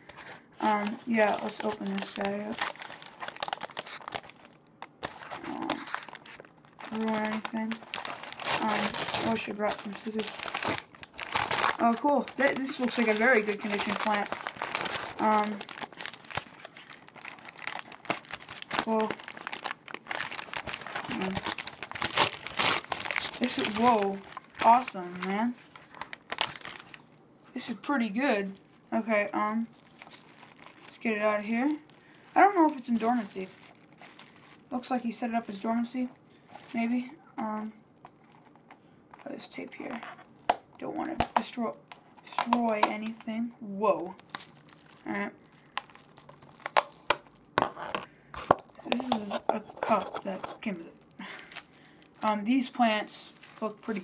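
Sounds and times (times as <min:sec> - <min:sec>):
plastic wrapping crinkling: 0:00.0 - 0:54.0
paper bag crumpling: 0:00.1 - 0:27.1, 0:28.6 - 0:37.1.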